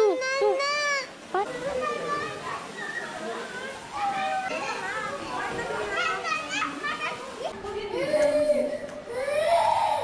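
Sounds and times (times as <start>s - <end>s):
adults talking: 0.0s - 9.4s
children chattering: 0.0s - 10.0s.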